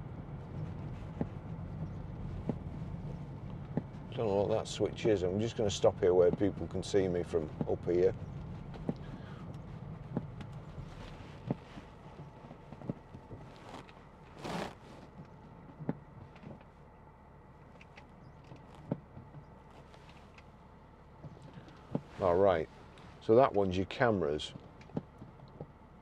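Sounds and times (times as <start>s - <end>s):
car cabin road and engine noise: 0.0s - 26.0s.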